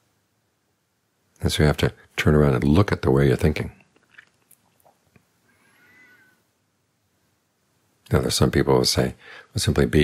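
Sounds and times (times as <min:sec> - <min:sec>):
faint high-pitched call: 0:05.6 - 0:06.5.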